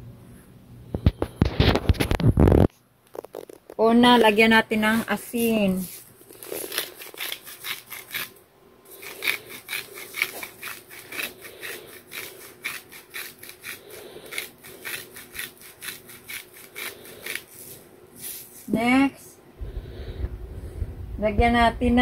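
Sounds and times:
salt grinder grinding: 4.2s - 18.6s.

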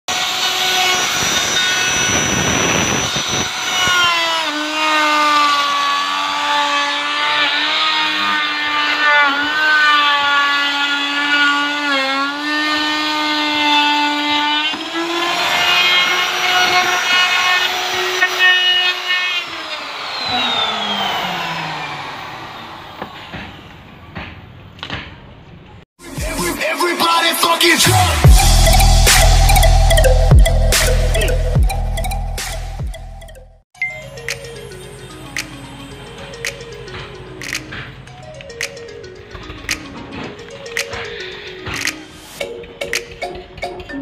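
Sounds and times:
router motor winding down: 0.1s - 23.3s
electric router whining: 0.1s - 23.8s.

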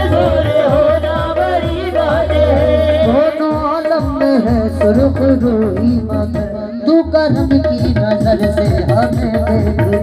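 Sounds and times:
person singing devotional song: 0.0s - 10.0s.

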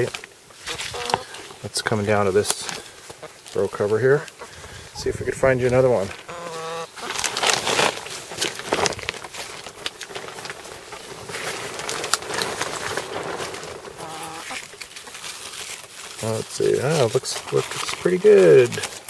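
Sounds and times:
plastic and leaves rustling: 0.0s - 19.0s
short pitched calls: 0.6s - 1.4s, 6.2s - 7.2s, 14.0s - 14.6s.

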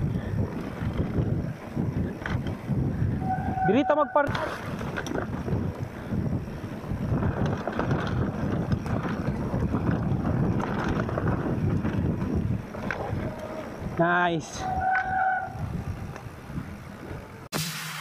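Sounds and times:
bike clicks and knocks: 0.0s - 3.0s, 4.2s - 17.4s
mountain bike rumble and rattle: 0.0s - 17.5s
wind rushing over microphone: 0.0s - 17.5s.

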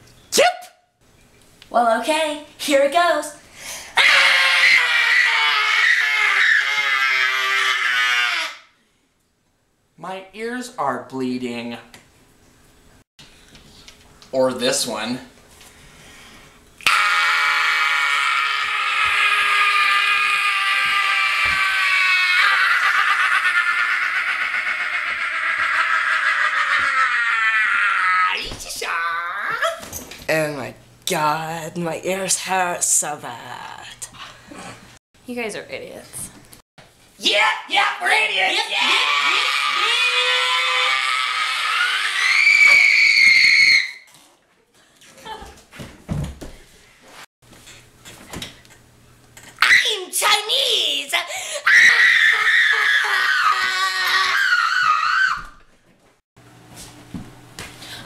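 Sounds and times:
shrill screeching voice: 4.0s - 8.6s, 37.2s - 44.1s.

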